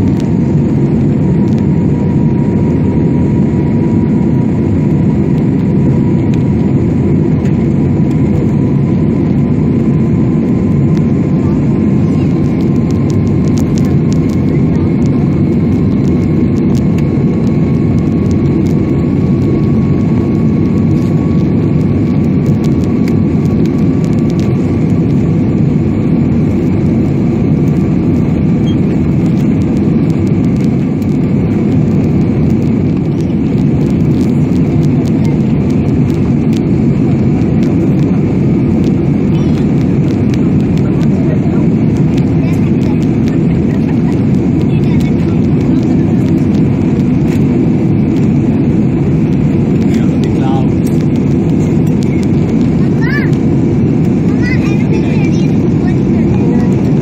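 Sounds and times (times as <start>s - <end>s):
jet engines rumbling in cabin: 0.0s - 57.0s.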